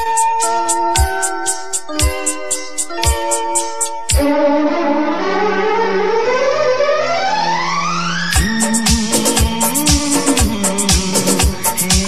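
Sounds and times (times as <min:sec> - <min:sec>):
orchestral film music: 0:04.2 - 0:11.9.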